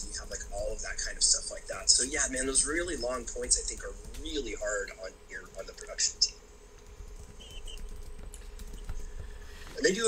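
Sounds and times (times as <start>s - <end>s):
faint clicks and taps: 0.1s - 6.0s, 6.8s - 9.8s.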